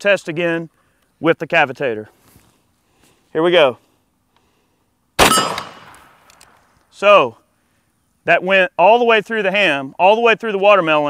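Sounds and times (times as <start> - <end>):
bullet ringing on steel plate: 5.2 - 5.8
rifle shot: 5.2 - 6.5.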